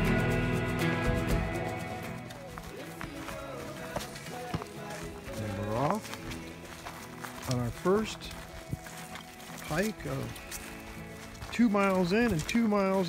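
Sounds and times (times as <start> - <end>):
pop song: 0.0 - 8.0
footsteps on dry leaves: 1.4 - 13.0.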